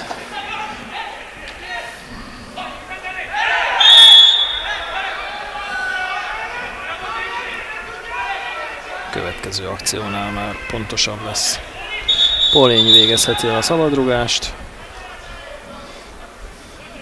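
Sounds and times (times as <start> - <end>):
crowd shouting: 2.6 - 17.0
referee's whistle blast: 3.8 - 4.9, 12.1 - 13.6.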